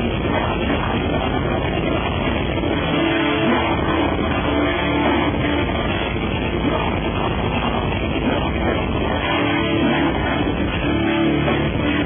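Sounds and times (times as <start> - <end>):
metalcore band playing live: 0.0 - 12.0.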